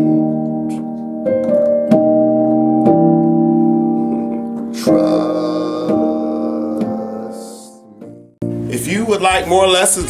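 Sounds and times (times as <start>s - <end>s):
piano gospel chords: 0.0s - 10.0s.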